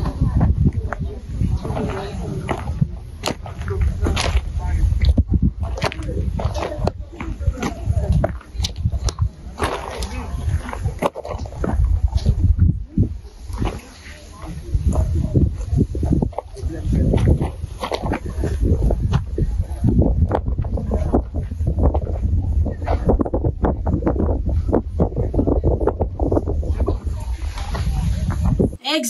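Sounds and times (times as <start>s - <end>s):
indistinct voices: 28.8s - 29.0s.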